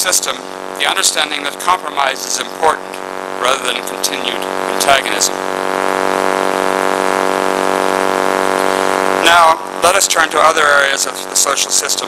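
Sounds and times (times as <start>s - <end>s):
loud buzzing hum: 0.0s - 12.0s.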